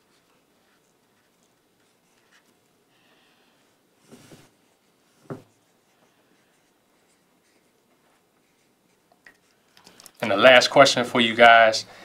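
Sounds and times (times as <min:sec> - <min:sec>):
marker writing on whiteboard: 0:04.3 - 0:07.8.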